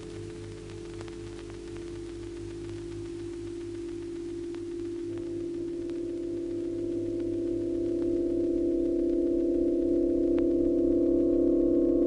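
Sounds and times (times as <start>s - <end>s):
faint clicks: 0.0s - 8.2s.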